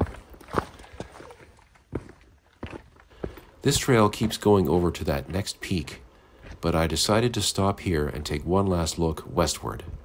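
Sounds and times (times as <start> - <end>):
footsteps on rock: 0.0 - 6.7
faint outdoor background: 0.0 - 10.0.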